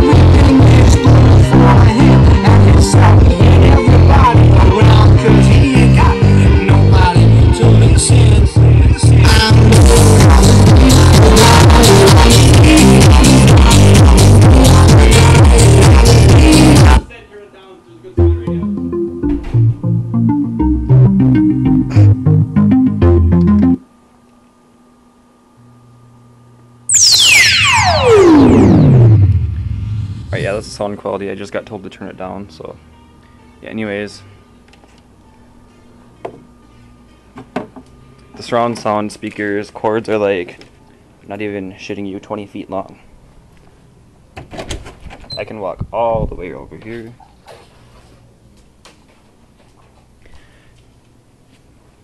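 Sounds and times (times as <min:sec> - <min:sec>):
loud electronic music: 0:00.0 - 0:17.1, 0:18.2 - 0:23.8, 0:26.9 - 0:30.8
falling synthesizer sweep: 0:26.9 - 0:31.0.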